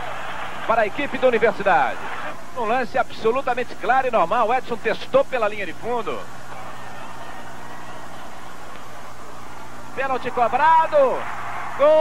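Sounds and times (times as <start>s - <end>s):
television hiss: 0.0s - 12.0s.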